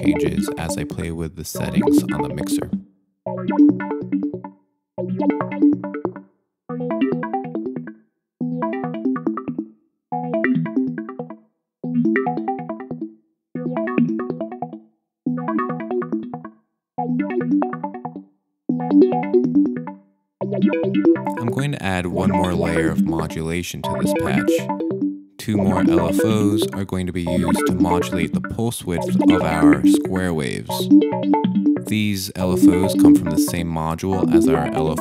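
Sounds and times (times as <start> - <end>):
synthesizer plucked chords: 0.0 - 4.4, 20.6 - 35.0.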